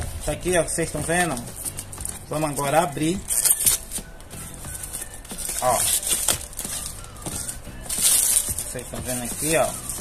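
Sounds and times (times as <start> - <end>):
plastic wrap crinkling and tearing: 1.2 - 10.0.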